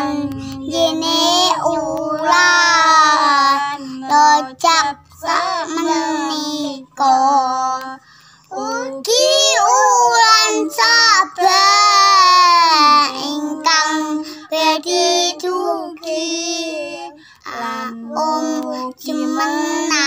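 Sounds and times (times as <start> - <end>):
girl singing: 0.0 - 20.0.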